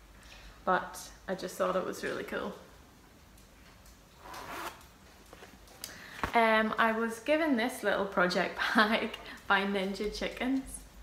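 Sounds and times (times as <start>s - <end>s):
zip rasp on cloth bag: 4.2s - 4.8s.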